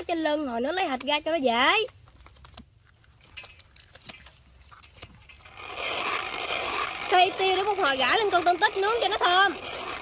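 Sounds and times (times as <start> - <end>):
pepper mill grinding: 5.3 - 10.0.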